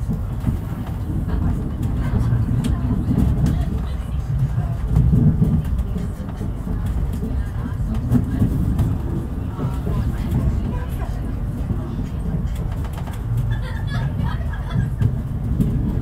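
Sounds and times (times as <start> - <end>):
train wheels rumbling on track: 0.0 - 16.0
wheels clicking over rail joints: 0.0 - 16.0.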